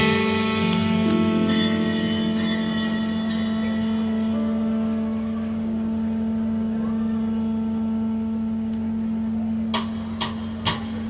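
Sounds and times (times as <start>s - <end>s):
band holding sustained chord: 0.0s - 10.2s.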